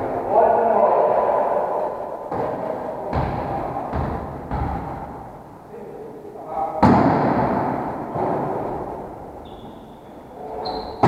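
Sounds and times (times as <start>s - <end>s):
volleyball hit in echoing gym: 2.0s - 5.6s, 6.8s - 9.9s
short high squeak: 10.6s - 11.0s.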